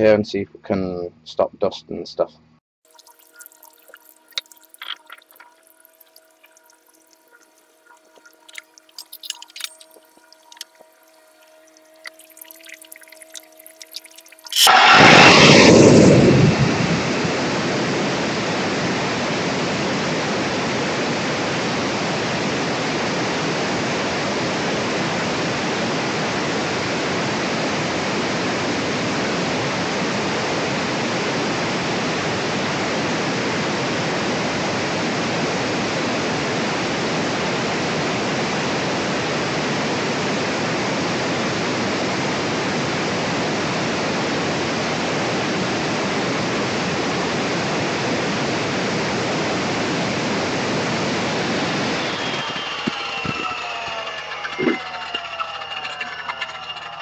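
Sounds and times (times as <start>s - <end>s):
angle grinder cutting brick: 52.3s - 57.0s.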